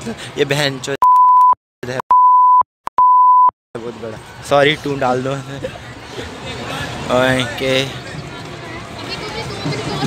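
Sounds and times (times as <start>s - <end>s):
censor bleep tone: 1.0s - 3.5s.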